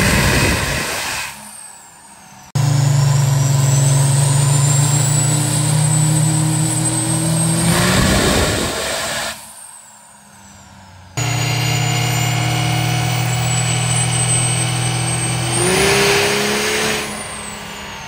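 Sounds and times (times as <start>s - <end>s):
turbo whistle winding down: 0.0s - 10.6s, 11.2s - 18.0s
diesel engine drone: 0.0s - 18.0s
turbo whine: 0.0s - 18.0s.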